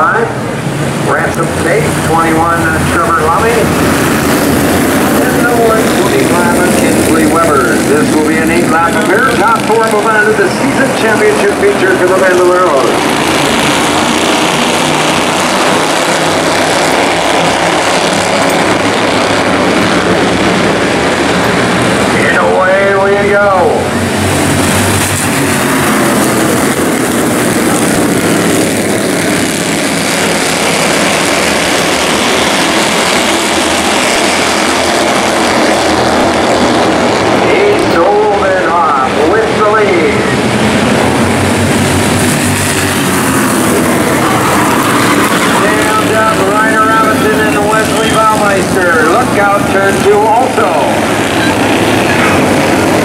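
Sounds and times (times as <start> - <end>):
race car engines droning: 0.0 - 53.0
person speaking: 5.1 - 13.0, 45.5 - 51.1.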